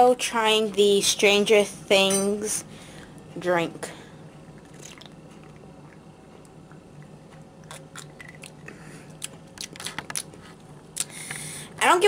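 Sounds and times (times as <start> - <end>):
person sipping and swallowing: 4.6 - 10.4.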